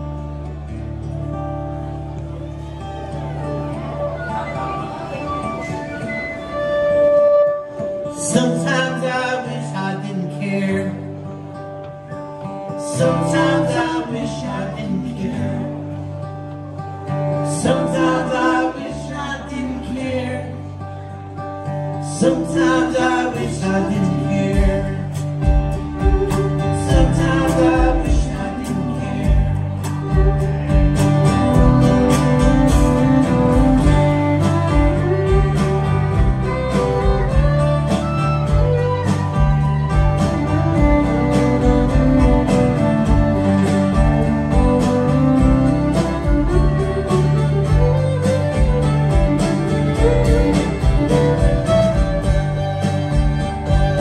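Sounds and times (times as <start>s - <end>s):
strummed acoustic guitar: 0.0s - 54.0s
electric bass: 23.6s - 54.0s
steady drumbeat: 24.6s - 28.5s, 29.3s - 54.0s
fiddle holding long note: 29.9s - 54.0s.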